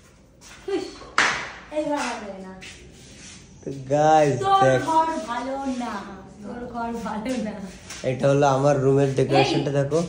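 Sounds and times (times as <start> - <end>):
hand clap or slap: 1.1 - 2.2
person speaking: 3.7 - 10.0.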